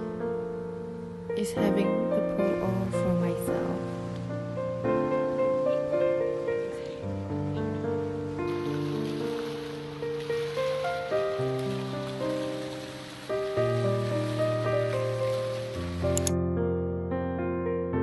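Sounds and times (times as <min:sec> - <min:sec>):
slow keyboard chords: 0:00.0 - 0:10.0
steady hiss: 0:02.2 - 0:16.3.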